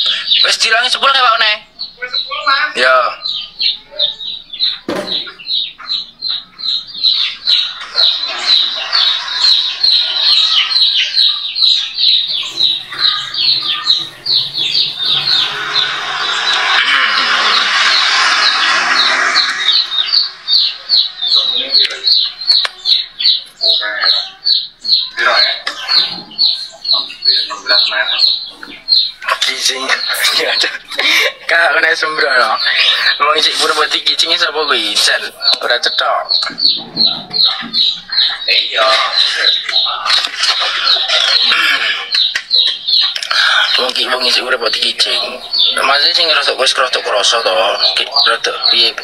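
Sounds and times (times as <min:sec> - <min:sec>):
bird chirping: 0:00.0 - 0:49.0.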